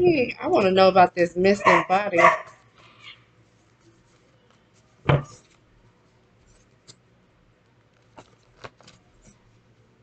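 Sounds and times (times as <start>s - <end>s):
person speaking: 0.0s - 2.4s.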